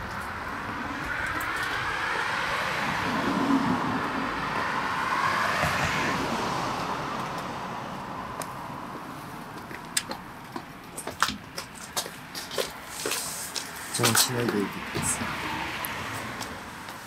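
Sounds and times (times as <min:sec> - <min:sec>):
car passing: 0:00.0 - 0:17.0.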